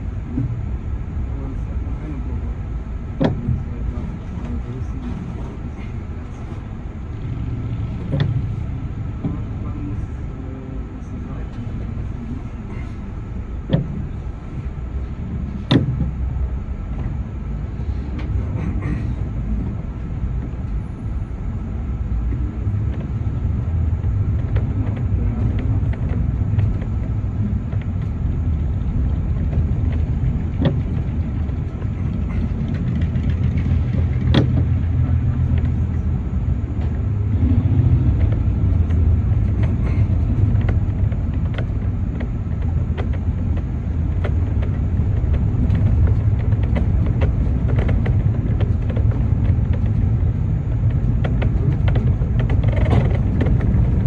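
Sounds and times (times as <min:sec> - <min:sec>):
bus engine and road rumble: 0:00.0 - 0:54.0.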